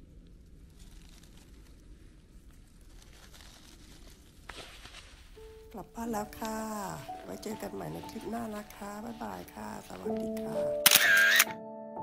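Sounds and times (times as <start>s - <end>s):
background music with held notes: 5.4s - 12.0s
camera shutter click and whir: 10.8s - 11.6s.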